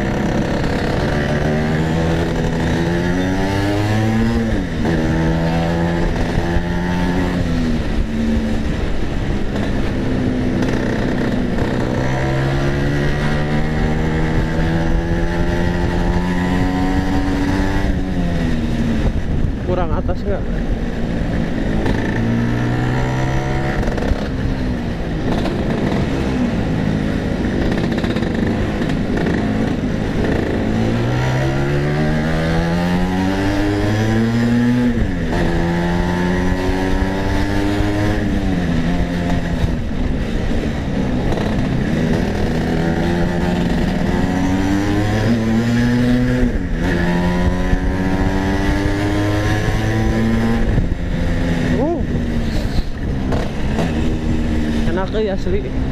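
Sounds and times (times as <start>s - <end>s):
scooter engine accelerating: 0.0s - 19.6s, 20.4s - 55.9s.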